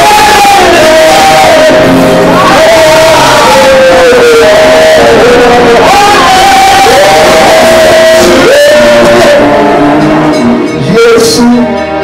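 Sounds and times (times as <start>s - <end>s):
band with guitar: 0.0s - 12.0s
men singing into microphones: 0.0s - 12.0s.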